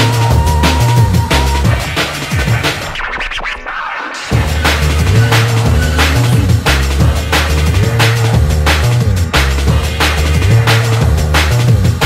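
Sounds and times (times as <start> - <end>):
drum and bass music: 0.0 - 12.0
vinyl record scratching: 0.0 - 12.0.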